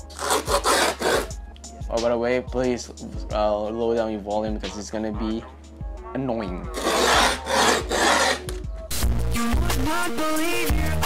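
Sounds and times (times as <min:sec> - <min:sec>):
hand tool scraping grip tape: 0:00.1 - 0:01.4, 0:06.8 - 0:08.6
music with a bass line: 0:04.4 - 0:11.0.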